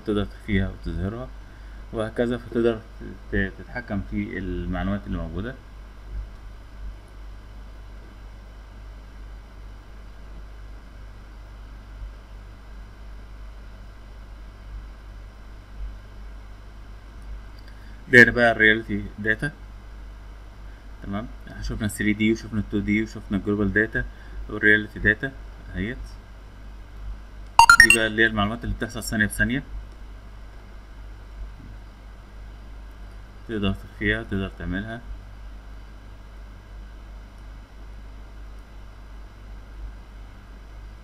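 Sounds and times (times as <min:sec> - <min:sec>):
rising computer alert chime: 0:27.6 - 0:28.0.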